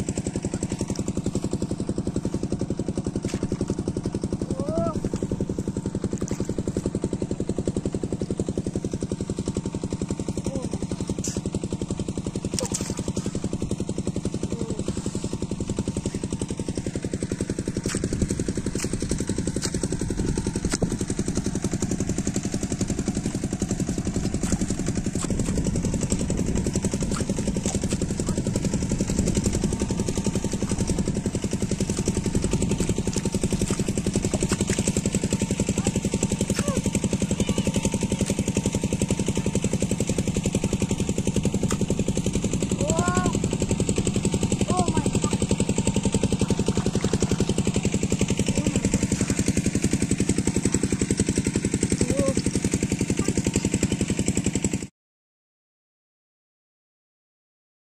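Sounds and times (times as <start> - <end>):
small engine running steadily: 0.0 - 54.9.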